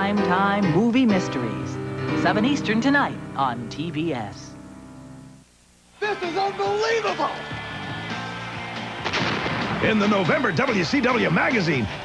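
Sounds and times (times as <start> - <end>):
loud bang with echo: 9.0 - 9.9.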